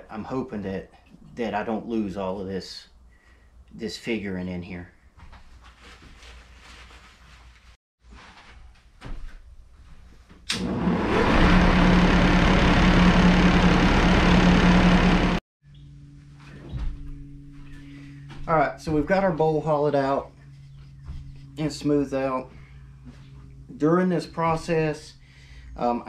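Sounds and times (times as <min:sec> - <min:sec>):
lathe running: 0:10.5 - 0:15.4
quieter hum: 0:10.5 - 0:26.0.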